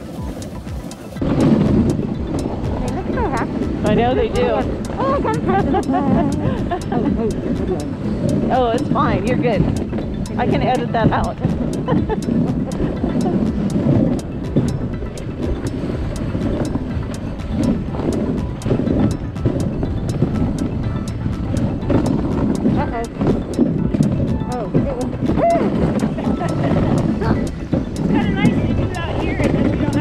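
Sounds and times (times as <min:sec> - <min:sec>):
faint regular ticking: 0:00.0 - 0:30.0.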